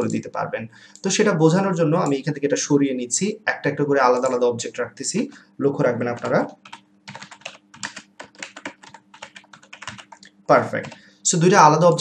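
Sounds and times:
typing on computer keyboard: 4.1s - 4.4s, 6.1s - 11.0s.

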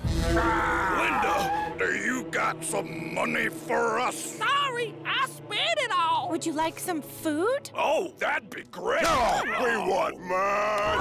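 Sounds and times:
background music: 0.0s - 11.0s
man groaning: 10.2s - 11.0s.

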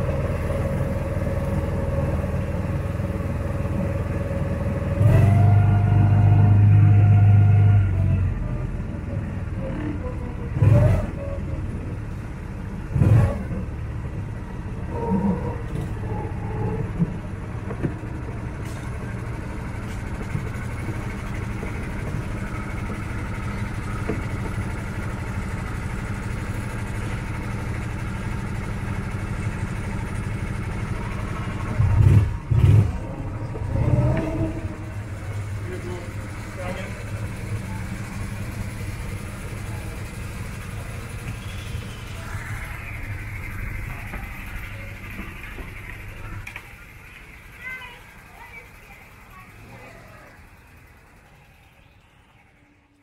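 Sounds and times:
small engine idling and revving: 0.0s - 53.0s
low rumble: 28.6s - 48.1s
faint voices: 32.8s - 53.0s.

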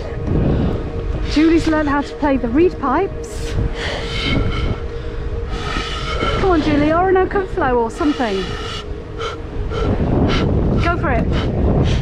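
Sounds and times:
wind rumble on microphone: 0.0s - 12.0s
breathy pan pipe puffs: 7.8s - 10.5s.

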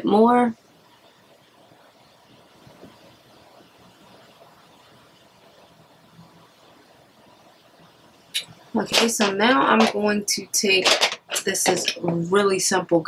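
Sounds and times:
faint hiss: 0.0s - 10.9s.

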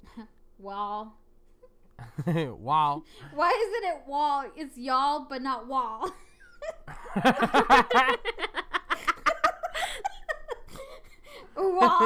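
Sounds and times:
person laughing: 11.6s - 12.0s.

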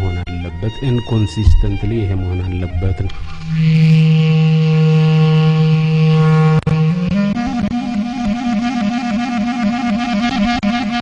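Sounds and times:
long held musical note: 1.2s - 4.2s.

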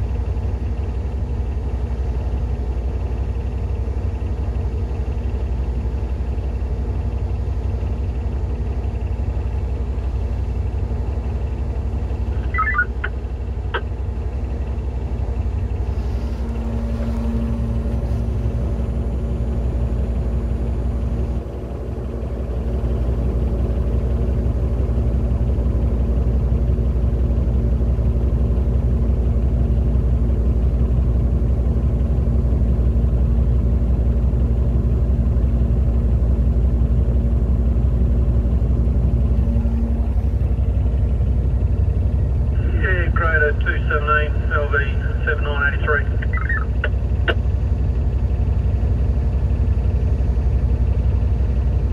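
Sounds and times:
diesel engine rumble: 0.0s - 51.9s
brief chirps: 12.4s - 13.1s.

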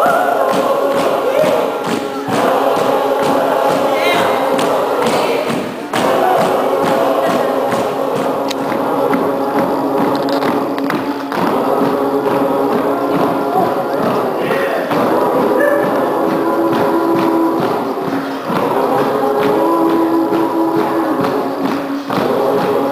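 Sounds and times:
group of voices singing: 0.0s - 22.9s
hand percussion beat: 0.0s - 22.9s.

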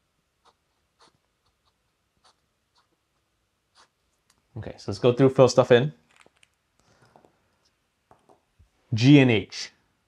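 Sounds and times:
pen nib scratching on paper: 0.4s - 4.2s.

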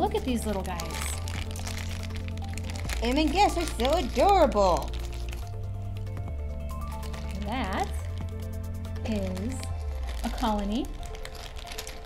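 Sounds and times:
background music with bass line: 0.0s - 12.0s
plastic bag crinkling: 0.0s - 12.0s.

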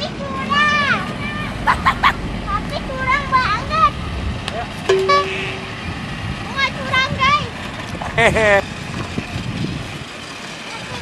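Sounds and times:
children's voices: 0.0s - 4.2s, 6.4s - 7.6s
horn toot: 4.9s - 5.9s.

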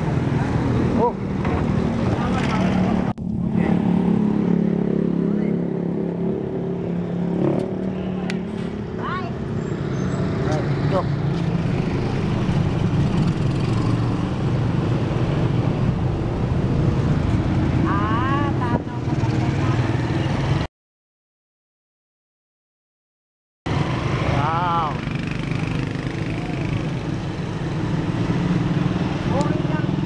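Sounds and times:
street traffic: 0.0s - 20.7s, 23.7s - 30.0s.

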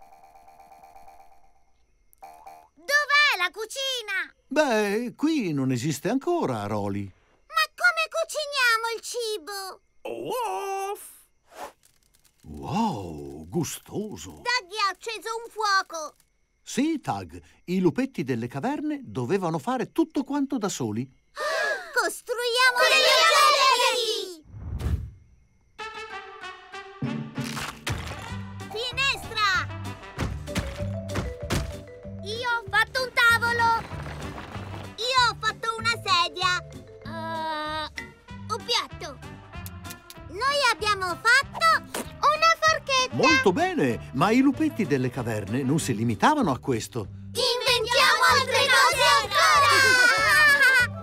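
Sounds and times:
low thud: 24.5s - 25.2s
cartoon brass music: 25.8s - 27.5s.

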